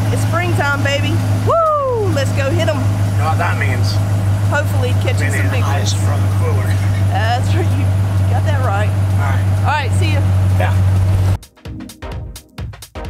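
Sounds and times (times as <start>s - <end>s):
engine idling: 0.0s - 11.4s
man calling out wordlessly: 5.1s - 7.1s
electronic music with steady beat: 6.4s - 13.0s.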